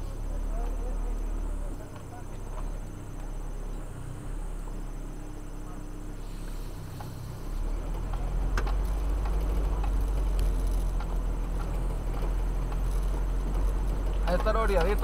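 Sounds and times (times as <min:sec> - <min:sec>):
vehicle engine and road rumble: 0:00.0 - 0:15.0.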